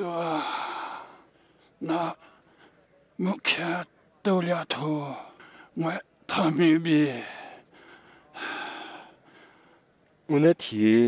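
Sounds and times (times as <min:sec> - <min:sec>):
breathy gasp: 0:07.4 - 0:09.8.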